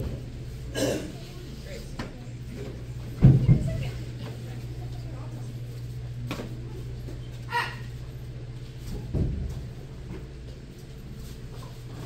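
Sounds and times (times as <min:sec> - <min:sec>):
child shouting: 0:07.5 - 0:07.9.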